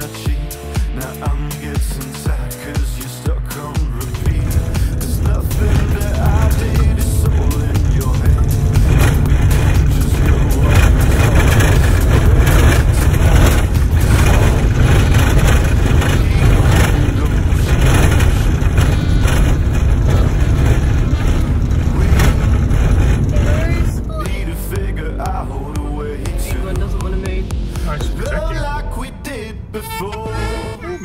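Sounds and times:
rattling and shaking: 0:00.0 - 0:29.7
van rumbling on dirt road: 0:00.0 - 0:31.0.

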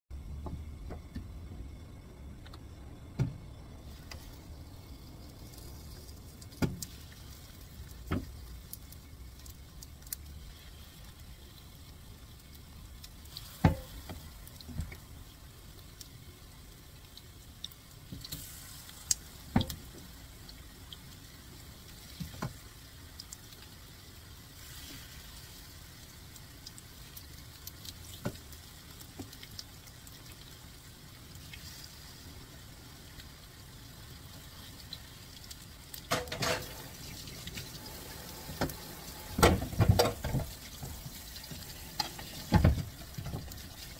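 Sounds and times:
food sizzling in oil: 0:03.8 - 0:43.9.

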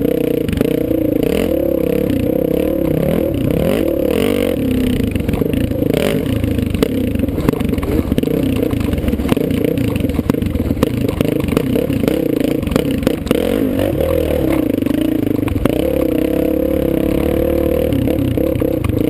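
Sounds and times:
dirt bike engine revving: 0:00.0 - 0:19.0
knocks and rattles from rough ground: 0:02.1 - 0:19.0.

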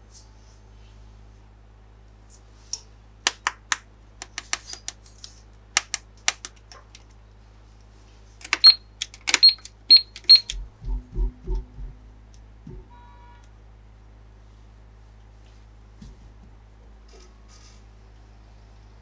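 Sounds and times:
toy register key presses: 0:08.4 - 0:10.6.

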